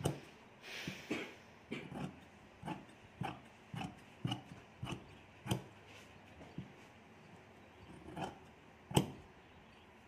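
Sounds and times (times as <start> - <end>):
shears snipping fabric: 1.8 - 5.9.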